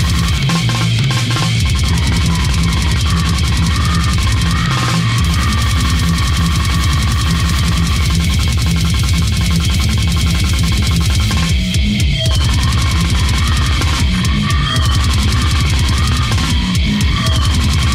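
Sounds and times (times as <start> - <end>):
death metal song: 0.0 - 17.9.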